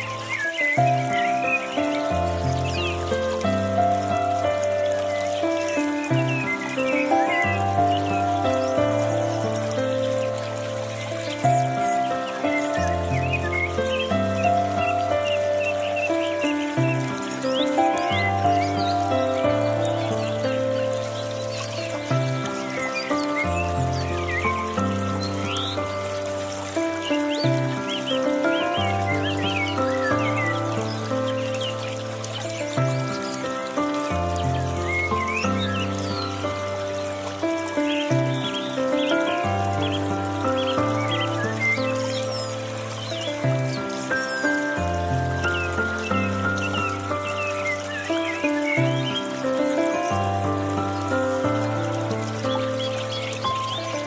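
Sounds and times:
bird chirps: 0:00.0 - 0:03.2
gentle piano music: 0:00.0 - 0:54.0
water trickling from fountain: 0:00.0 - 0:54.0.

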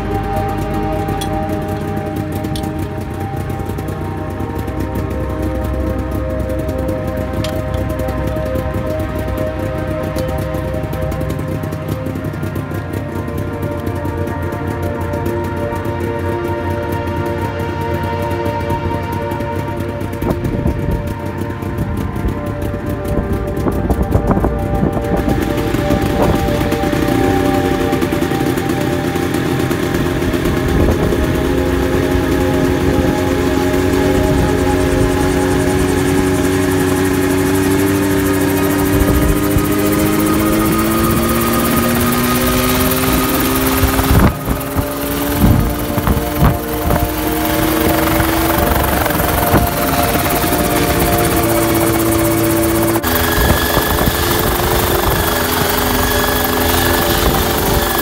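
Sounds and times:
helicopter engine and rotor: 0:00.0 - 0:58.0.

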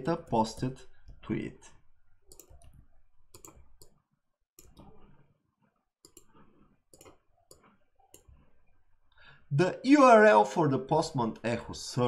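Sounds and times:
faint computer mouse clicks: 0:02.3 - 0:04.0, 0:06.0 - 0:08.3.

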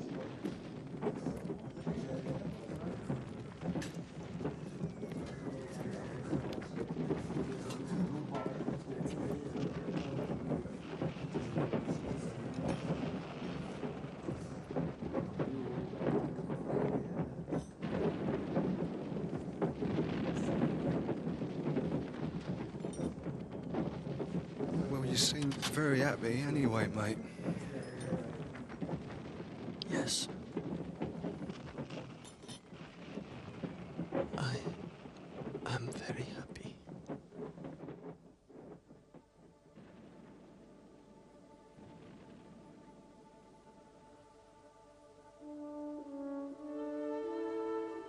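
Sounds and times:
crackle of small knocks: 0:00.0 - 0:43.9.

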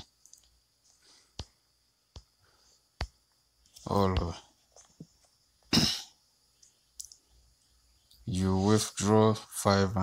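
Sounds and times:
person coughing: 0:05.7 - 0:06.2.

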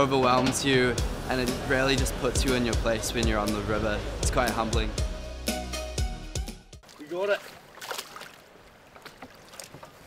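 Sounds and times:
light splashes: 0:06.8 - 0:10.0
river water lapping: 0:06.8 - 0:10.0.

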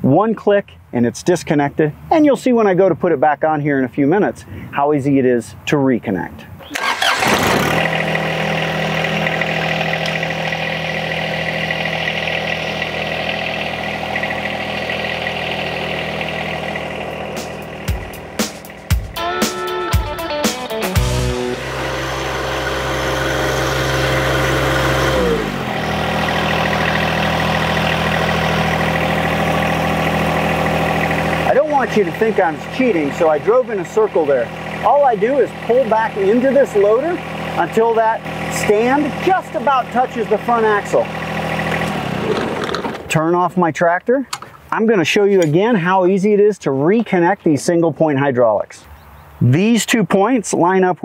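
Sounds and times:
tractor diesel engine running: 0:06.5 - 0:49.4.

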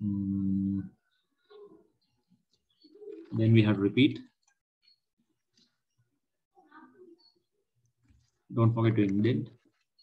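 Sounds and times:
person speaking: 0:08.2 - 0:09.9.

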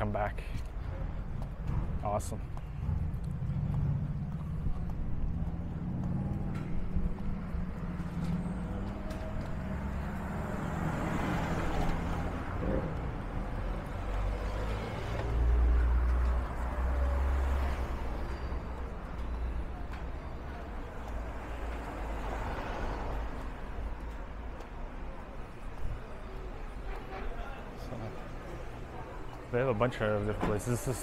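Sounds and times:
city street traffic: 0:00.0 - 0:31.0
vehicle passing: 0:00.8 - 0:26.8.

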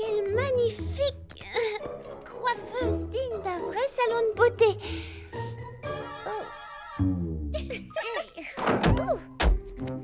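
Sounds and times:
light background music: 0:00.0 - 0:10.0
cartoon wardrobe door thunk: 0:08.6 - 0:09.8.

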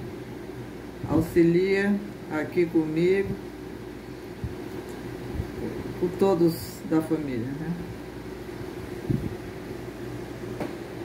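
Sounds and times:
low background hum: 0:00.0 - 0:11.0
soft low thumps: 0:09.0 - 0:09.5.

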